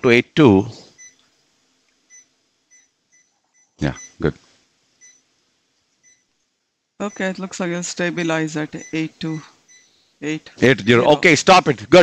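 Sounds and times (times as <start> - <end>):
patient monitor beeps: 1.0 - 1.2, 2.1 - 4.2, 5.0 - 5.3, 6.0 - 6.3, 7.0 - 7.4, 8.2 - 10.0
person speaking: 7.0 - 9.6, 10.2 - 12.0.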